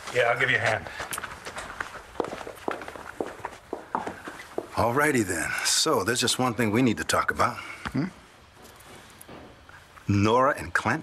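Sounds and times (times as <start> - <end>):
footsteps walking away: 0.0 - 5.1.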